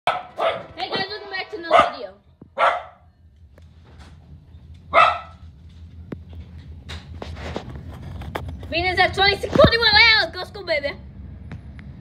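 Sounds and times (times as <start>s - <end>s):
dog barking: 0.1s - 1.1s, 1.7s - 3.1s, 4.9s - 5.4s
diesel locomotive rumble: 0.1s - 12.0s.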